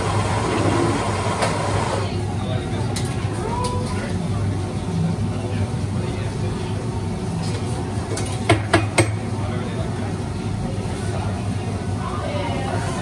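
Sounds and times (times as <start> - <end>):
sharp knocks on espresso machine: 8.5 - 9.2.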